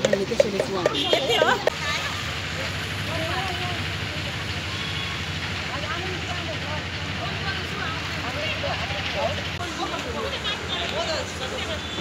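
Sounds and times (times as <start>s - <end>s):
faint voices talking: 0.0s - 12.0s.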